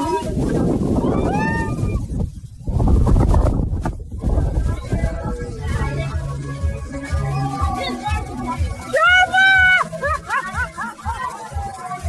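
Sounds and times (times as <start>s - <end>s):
music with steady bass beat: 0.0s - 12.0s.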